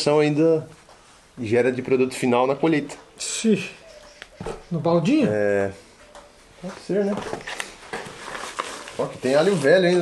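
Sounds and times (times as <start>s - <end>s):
garlic skins rustling on a table: 7.1s - 10.0s.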